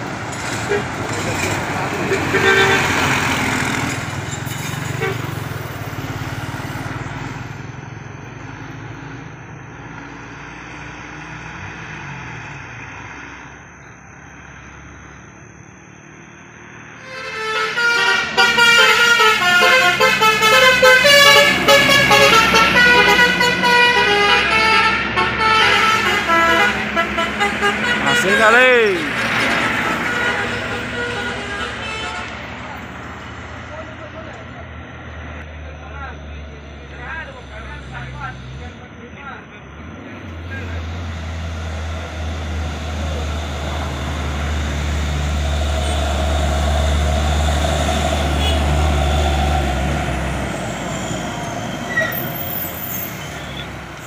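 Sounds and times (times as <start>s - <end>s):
coach bus driving past: 0.0s - 54.0s
vehicle horns playing pitched notes: 2.1s - 3.2s, 5.0s - 5.4s, 17.0s - 32.4s, 48.0s - 49.5s.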